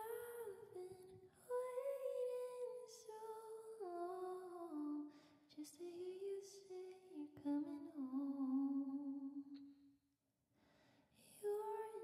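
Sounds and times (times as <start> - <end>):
woman singing softly: 0.0 - 9.7, 11.2 - 12.0.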